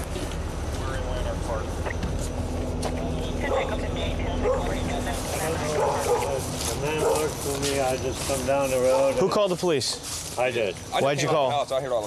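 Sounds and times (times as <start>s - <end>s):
vehicle engine rumble: 0.0s - 12.0s
dog barking and yipping: 4.4s - 4.7s, 5.6s - 7.4s.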